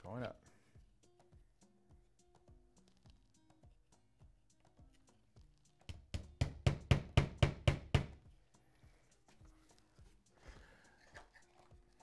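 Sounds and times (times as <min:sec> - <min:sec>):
hammer tapping: 0:05.9 - 0:08.2.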